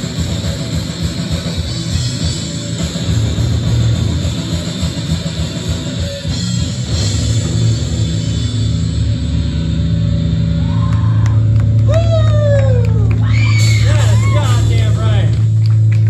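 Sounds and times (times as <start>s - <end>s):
death metal band playing: 0.0s - 15.9s
distorted electric guitars: 0.0s - 16.0s
drum kit: 0.0s - 16.0s.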